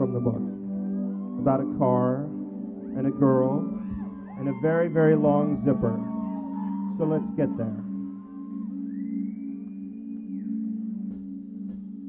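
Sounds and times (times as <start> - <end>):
band playing drone-like chord: 0.0 - 11.8.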